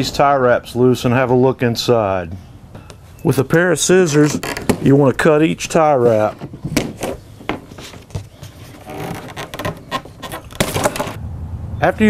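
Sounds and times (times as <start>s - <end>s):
strapping scraping off cardboard box: 6.1s - 11.2s.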